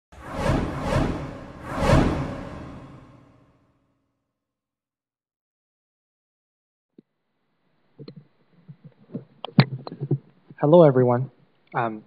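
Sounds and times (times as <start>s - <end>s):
whooshes: 0.1s - 3.7s.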